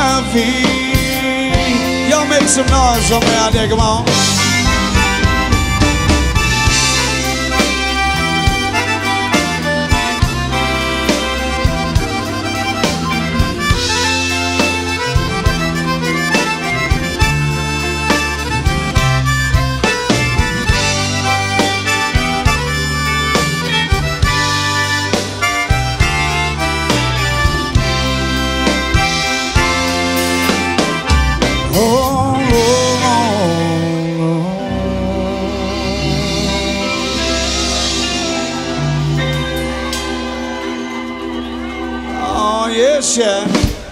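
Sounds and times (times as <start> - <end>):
button accordion: 0.0 - 43.9
drum kit: 0.0 - 43.9
electric bass: 0.0 - 43.9.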